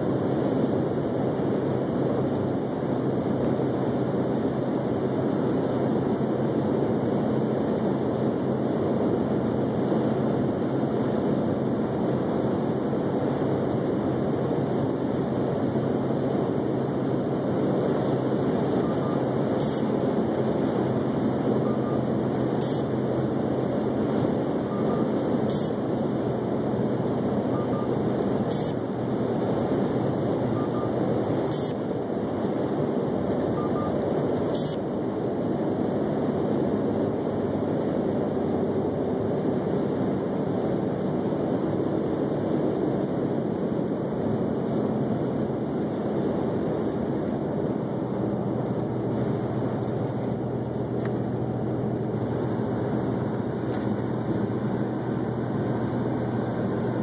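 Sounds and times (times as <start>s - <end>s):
car road and wind noise: 0.0s - 57.0s.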